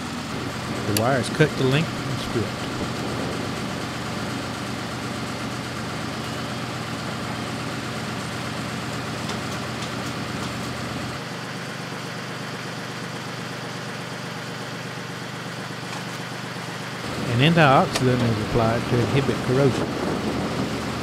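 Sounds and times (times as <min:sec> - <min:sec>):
engine idling: 0:00.0 - 0:21.0.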